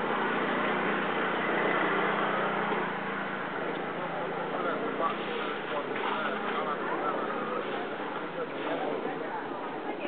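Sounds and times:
scooter engine humming: 0:00.0 - 0:05.1
busy street market noise: 0:00.0 - 0:10.0.

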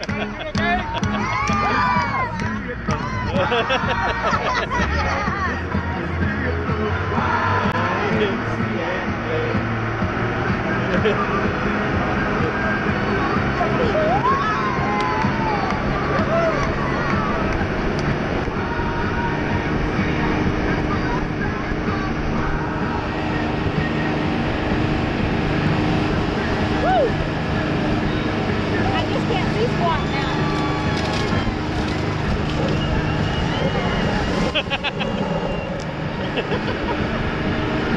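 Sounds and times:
passengers shouting: 0:00.0 - 0:09.7, 0:10.8 - 0:37.9
boat engines running: 0:00.0 - 0:37.9.

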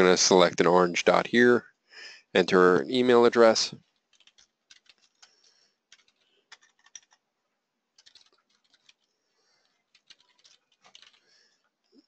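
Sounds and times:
faint keyboard typing: 0:03.4 - 0:07.3, 0:07.9 - 0:12.0.

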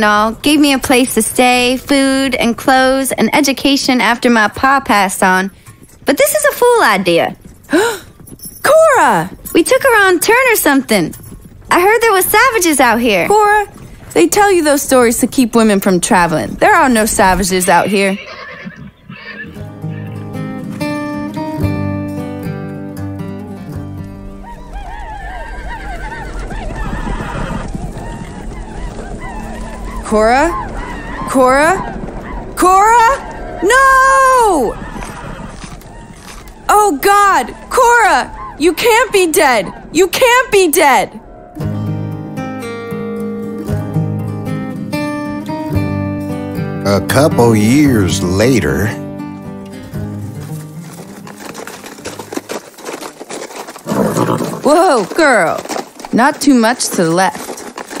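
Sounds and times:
horses whinnying: 0:05.3 - 0:14.8, 0:16.6 - 0:21.8, 0:23.1 - 0:43.7, 0:46.9 - 0:58.0
music: 0:19.4 - 0:25.3, 0:37.6 - 0:52.4
low rumble: 0:26.4 - 0:36.7, 0:37.4 - 0:44.2.

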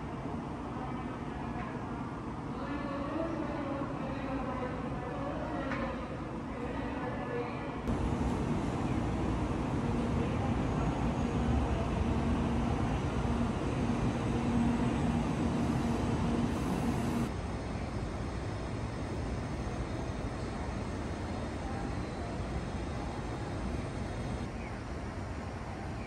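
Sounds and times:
city traffic noise: 0:07.9 - 0:17.3
low steady hum: 0:07.9 - 0:17.3.

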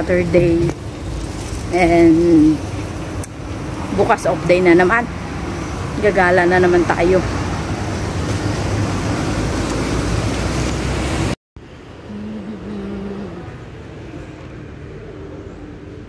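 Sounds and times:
road traffic rushing past: 0:00.0 - 0:16.0.

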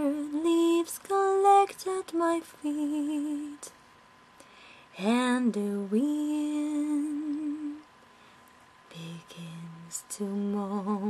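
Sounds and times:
woman singing with vibrato: 0:00.0 - 0:03.7, 0:05.0 - 0:07.8, 0:08.9 - 0:11.0.

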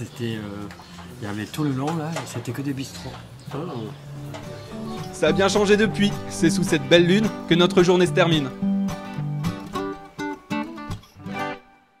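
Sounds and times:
acoustic guitar strumming: 0:04.0 - 0:11.9.

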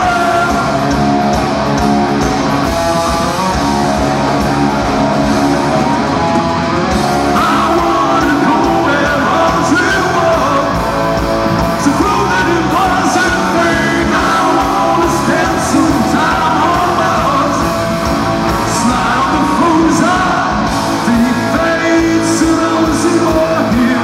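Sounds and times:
man singing lead: 0:00.0 - 0:01.1, 0:07.1 - 0:24.0
drums: 0:00.0 - 0:24.0
electric guitars: 0:00.0 - 0:24.0.

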